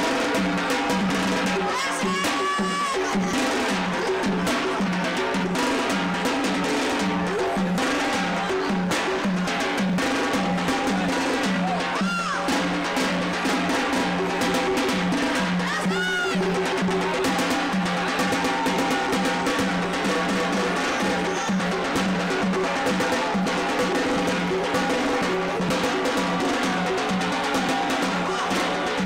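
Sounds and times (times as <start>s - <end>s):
dance music with drum: 0.0s - 29.0s
double-headed drum beating: 0.0s - 29.0s.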